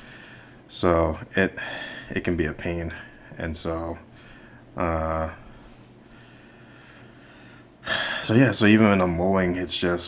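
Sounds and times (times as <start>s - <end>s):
man's sharp intake of breath: 6.1s - 8.3s.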